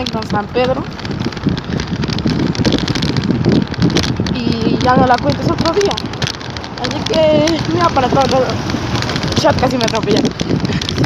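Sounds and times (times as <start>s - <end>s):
bicycle road noise on rough pavement: 0.0s - 11.0s
wind buffeting microphone: 0.0s - 11.0s.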